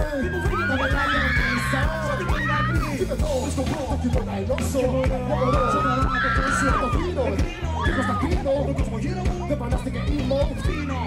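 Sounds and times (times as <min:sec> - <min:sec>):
bass line: 0:00.0 - 0:11.0
drums: 0:00.0 - 0:11.0
person rapping: 0:00.0 - 0:11.0.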